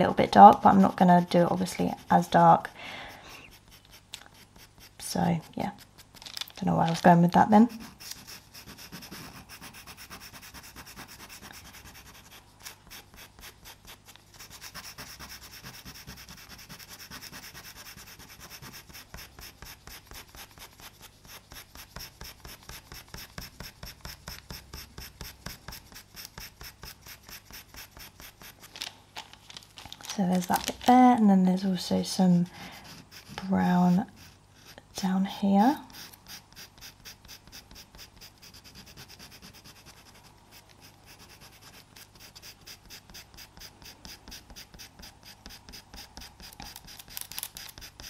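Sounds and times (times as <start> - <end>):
pencil scratching on paper: 0.0 - 28.7, 32.2 - 48.0.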